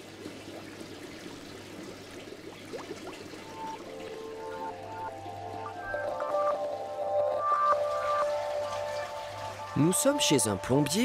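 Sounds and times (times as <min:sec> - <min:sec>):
water bubbling and gurgling: 0:00.0 - 0:11.0
soft music notes: 0:03.4 - 0:11.0.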